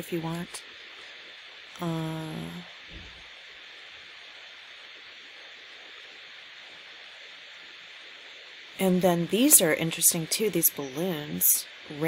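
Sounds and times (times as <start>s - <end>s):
faint microphone hiss: 0.0s - 12.0s.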